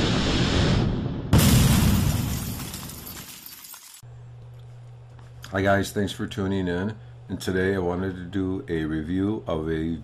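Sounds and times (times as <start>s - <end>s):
glass shattering: 1.4s - 4.0s
steady low hum: 4.0s - 10.0s.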